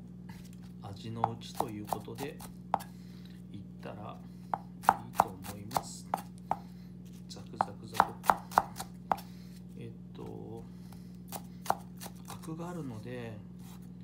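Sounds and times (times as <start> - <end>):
steady low hum: 0.0 - 14.0
knife chopping on wooden board: 1.1 - 3.0, 4.5 - 6.8, 7.6 - 9.3, 10.9 - 12.5.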